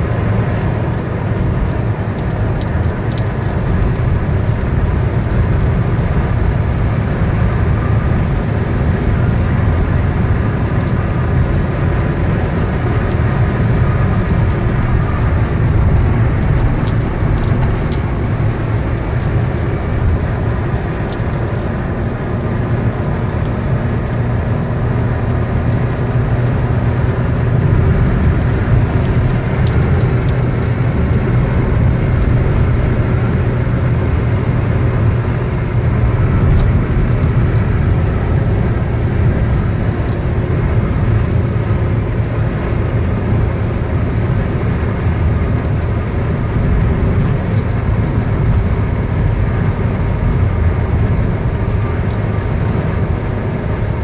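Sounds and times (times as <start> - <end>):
car road and engine noise: 0.0 - 54.0.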